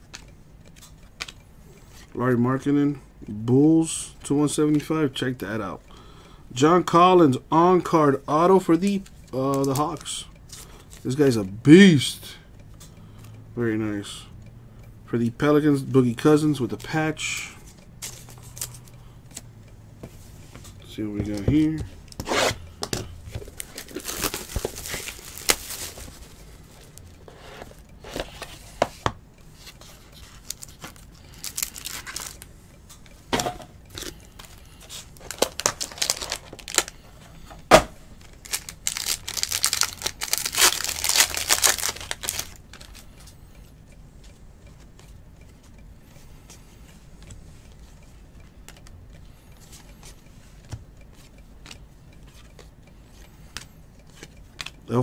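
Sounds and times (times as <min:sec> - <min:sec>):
cards handled clicking: 0:00.1 - 0:01.4, 0:53.5 - 0:54.8
plastic wrappers tearing: 0:23.5 - 0:26.4, 0:30.4 - 0:32.4, 0:35.2 - 0:37.0, 0:38.4 - 0:43.0.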